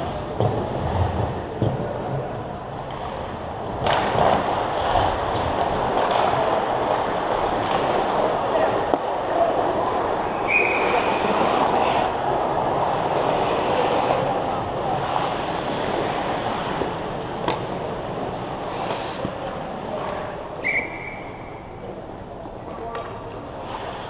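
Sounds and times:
skates on ice: 0.0s - 22.0s, 22.6s - 24.0s
referee's whistle blast: 20.6s - 21.6s
distant shouts: 20.6s - 21.8s.

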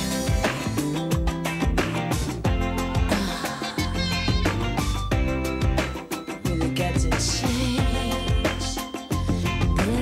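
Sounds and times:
bass: 0.0s - 10.0s
drum kit steady beat: 0.0s - 10.0s
electric guitars: 0.0s - 10.0s.

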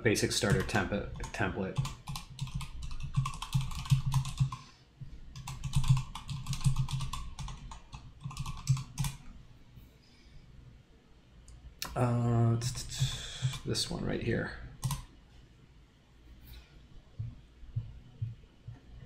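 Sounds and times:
typing on computer keyboard: 0.4s - 4.6s, 5.3s - 9.2s, 13.0s - 13.7s, 14.8s - 15.1s.

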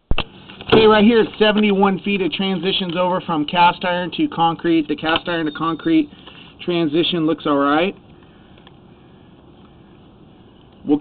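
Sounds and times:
high-pitched tone: 5.3s - 6.1s.

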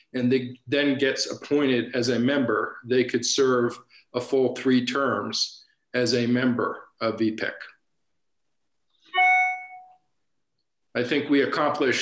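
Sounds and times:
bright chime ding: 9.2s - 10.0s.

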